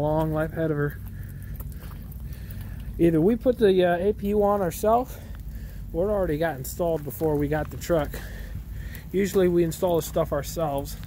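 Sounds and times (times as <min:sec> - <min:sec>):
footsteps crunching on gravel: 0:00.0 - 0:11.0
low steady rumble: 0:00.0 - 0:11.0
faint ticks: 0:00.2 - 0:03.0, 0:07.2 - 0:09.8.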